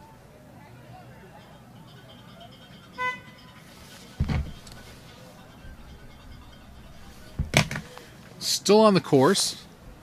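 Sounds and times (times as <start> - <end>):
low thump: 4.2 - 4.6.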